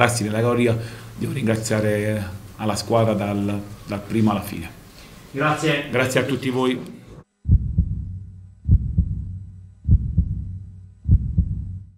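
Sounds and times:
steady low hum: 0:00.0 - 0:11.9
heartbeat thumps: 0:07.4 - 0:11.9.

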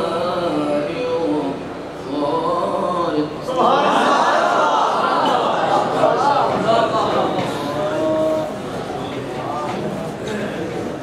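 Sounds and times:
man chanting into a microphone: 0:00.0 - 0:03.7, 0:06.6 - 0:08.6.

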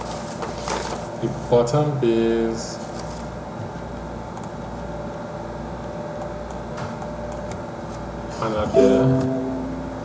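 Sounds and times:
computer background hum: 0:00.0 - 0:10.0.

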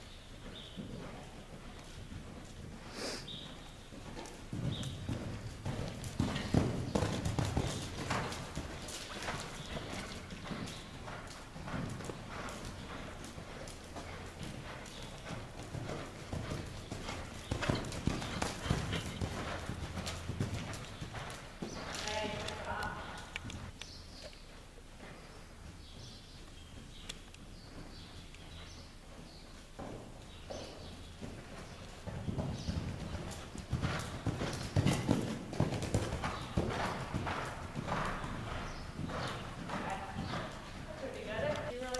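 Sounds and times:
hoofbeats cantering on sand: 0:00.0 - 0:41.9.

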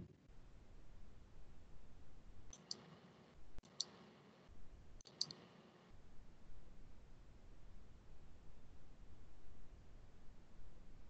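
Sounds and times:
faint clicks: 0:05.0 - 0:05.5.

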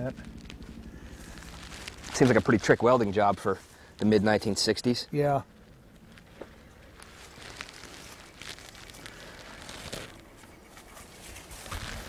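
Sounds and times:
faint shuffling: 0:00.0 - 0:12.0.

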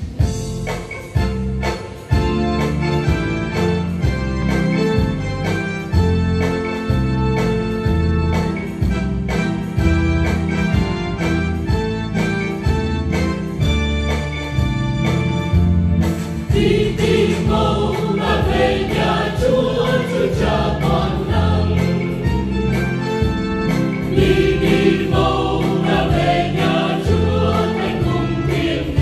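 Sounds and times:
instrumental accompaniment: 0:00.0 - 0:29.0
choir singing a hymn: 0:16.5 - 0:22.5, 0:24.0 - 0:29.0.

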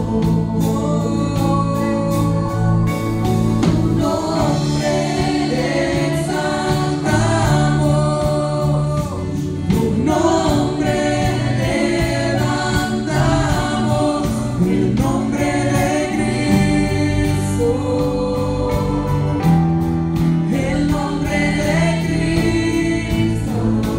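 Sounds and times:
women singing: 0:00.0 - 0:19.6, 0:20.3 - 0:23.9
band playing: 0:00.0 - 0:23.9.

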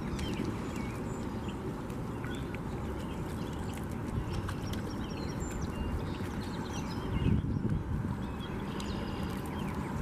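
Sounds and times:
low rumble on microphone: 0:00.0 - 0:10.0
small birds chirping: 0:00.0 - 0:10.0.

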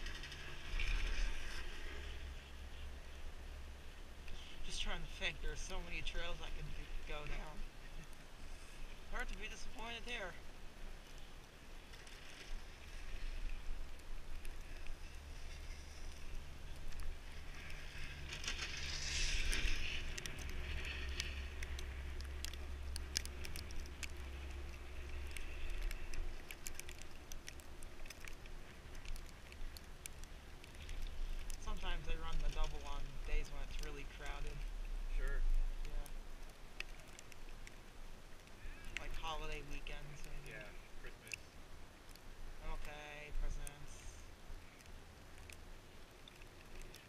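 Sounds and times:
small clicks and rustles: 0:00.0 - 0:47.0
wind rumbling on microphone: 0:00.0 - 0:47.0
person speaking: 0:09.1 - 0:10.4, 0:39.0 - 0:41.4, 0:42.6 - 0:44.3.

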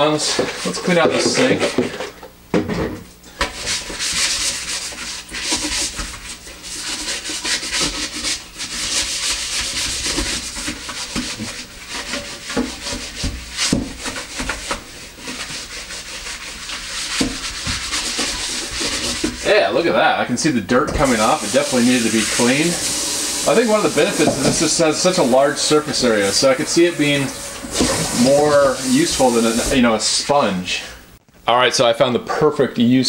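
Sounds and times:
cloth scrubbing a sink: 0:00.0 - 0:02.2, 0:03.3 - 0:30.9.

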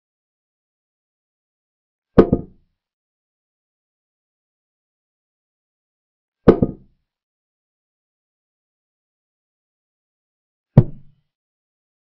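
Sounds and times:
short wooden knock: 0:02.2 - 0:02.6, 0:06.5 - 0:06.9, 0:10.8 - 0:11.1.

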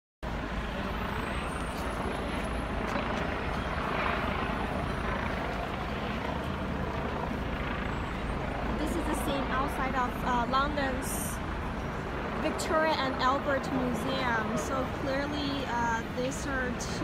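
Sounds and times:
city street noise: 0:00.2 - 0:17.0
helicopter rotor drone: 0:00.2 - 0:17.0.

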